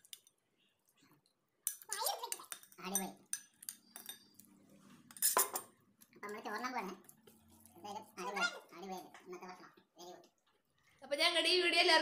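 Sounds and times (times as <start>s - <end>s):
metal dishes clattering: 5.1s - 6.4s.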